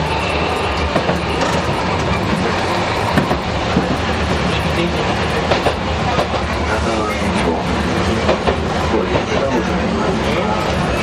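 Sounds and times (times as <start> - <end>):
tram motor rumble and gear noise: 0.0 - 11.0
wheels clicking on track: 0.0 - 11.0.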